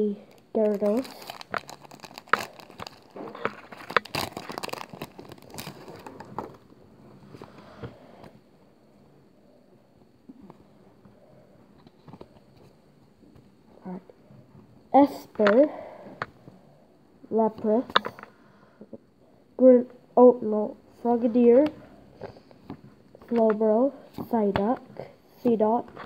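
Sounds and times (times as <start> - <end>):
faint handling of cards: 0.2 - 8.4, 10.3 - 13.6
foil wrapper crinkling and tearing: 0.3 - 6.6.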